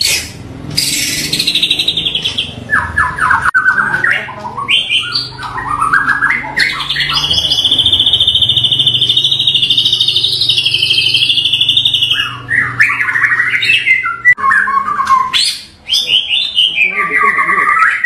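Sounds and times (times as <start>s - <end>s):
bird singing trills and whistles: 0.0s - 18.0s.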